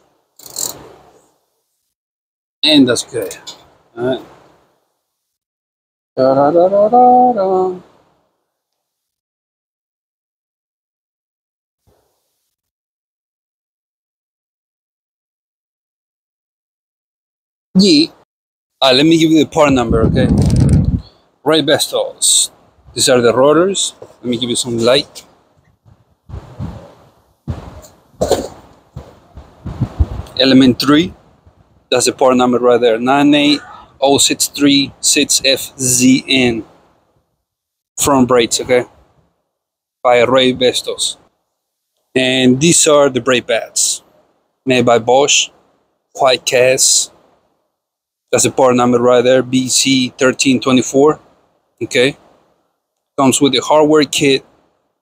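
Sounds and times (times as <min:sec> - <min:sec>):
ratchet wrench clicking: 0:00.4 - 0:00.8.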